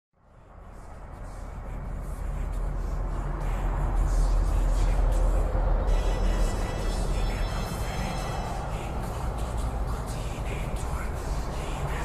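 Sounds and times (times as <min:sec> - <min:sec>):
low rumbling noise: 0:00.2 - 0:12.0
music: 0:00.3 - 0:12.0.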